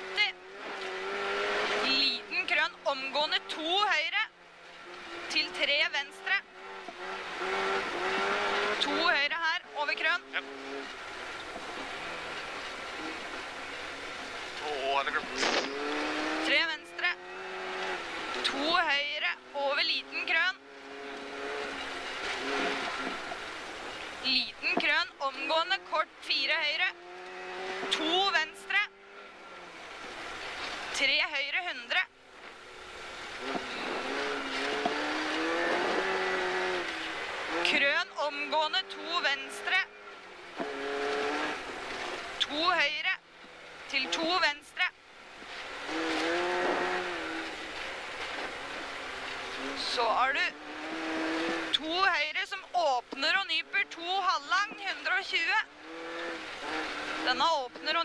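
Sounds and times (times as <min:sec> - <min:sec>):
rally car engine revving: 0:00.0 - 0:58.0
tyres rushing on snow: 0:00.0 - 0:58.0.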